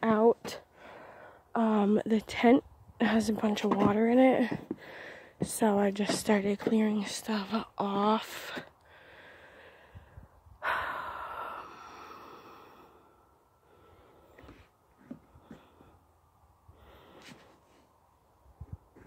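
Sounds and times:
person breathing out loudly: 0:08.9 - 0:14.6.

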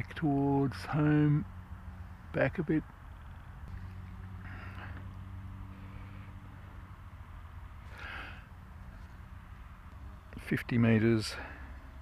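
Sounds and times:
soft breaths close to microphone: 0:04.3 - 0:10.3, 0:11.2 - 0:12.0.

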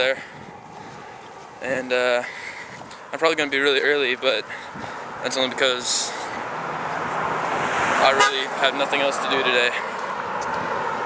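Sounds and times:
car passing on road: 0:00.0 - 0:11.0.

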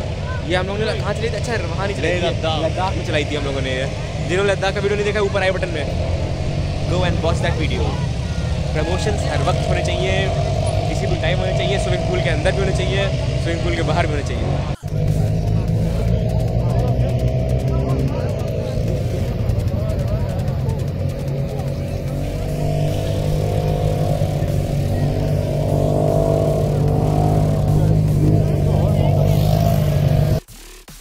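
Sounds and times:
dune buggy engines idling: 0:00.0 - 0:30.5.

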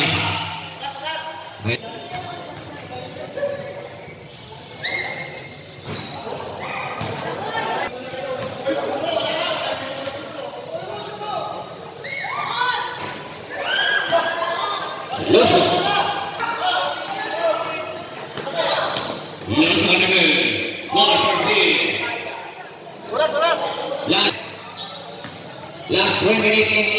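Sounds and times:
spectators' voices and shouts: 0:00.0 - 0:26.9
sneakers squeaking on court: 0:01.8 - 0:07.5, 0:12.9 - 0:20.9, 0:22.7 - 0:25.9.

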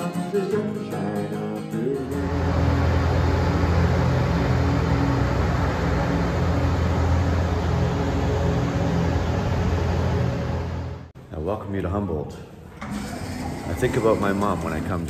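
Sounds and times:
ice resurfacer engine hum: 0:02.1 - 0:11.1.

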